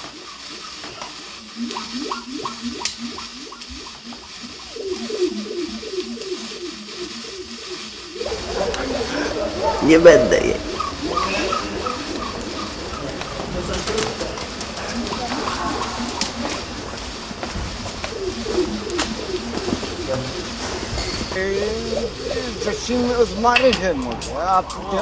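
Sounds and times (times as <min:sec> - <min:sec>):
pigeon cooing: 0:00.0 - 0:25.0
indistinct voices: 0:07.8 - 0:25.0.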